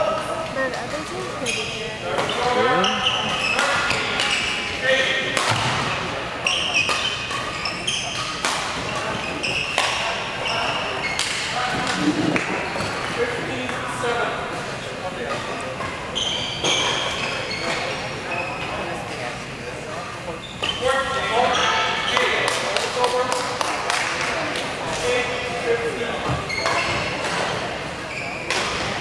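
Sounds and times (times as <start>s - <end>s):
shoes squeaking on court: 0.6s - 4.7s, 6.4s - 13.1s, 15.3s - 18.8s, 26.2s - 29.0s
rackets striking shuttlecock: 8.2s - 9.1s.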